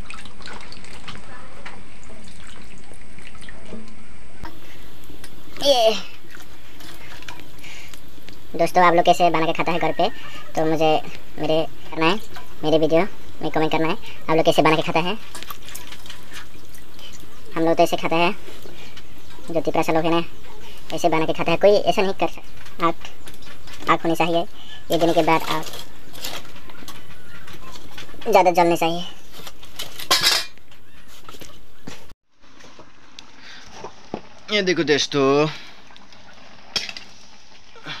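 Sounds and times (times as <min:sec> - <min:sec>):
steel cookware clattering: 0:29.4 - 0:30.6
wood fire popping and crackling: 0:32.6 - 0:38.0.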